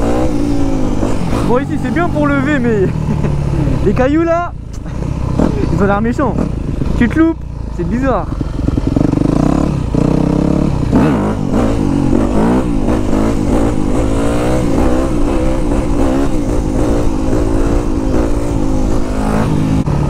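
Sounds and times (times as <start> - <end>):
motorcycle engine revving hard: 0.0 - 4.0, 4.9 - 20.0.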